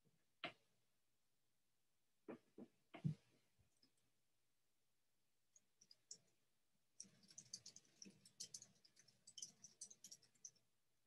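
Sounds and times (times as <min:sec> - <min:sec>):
computer keys clicking: 0:07.0 - 0:10.6.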